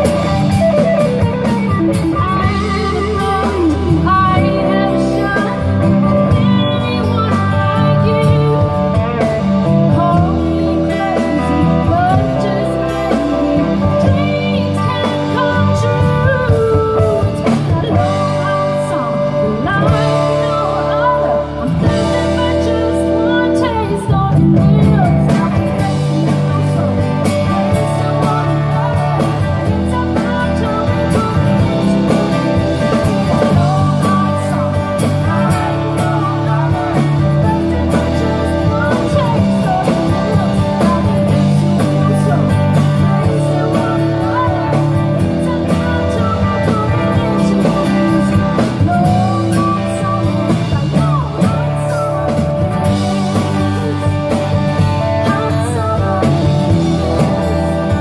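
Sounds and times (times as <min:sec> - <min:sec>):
country-rock band playing: 0:00.0 - 0:58.0
woman singing lead vocal: 0:00.0 - 0:58.0.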